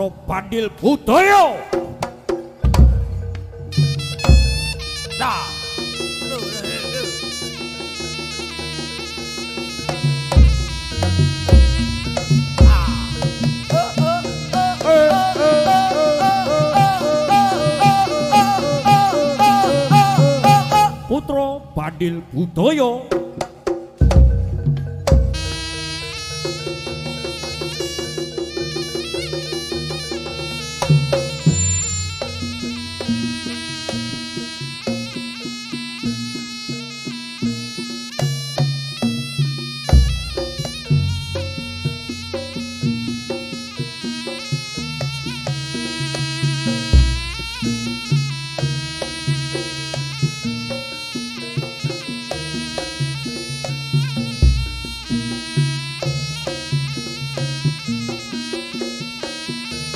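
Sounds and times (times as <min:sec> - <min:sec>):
hand drum rhythms: 0:01.5 - 0:59.9
nasal reed-pipe melody: 0:02.2 - 0:22.8, 0:24.0 - 0:59.9.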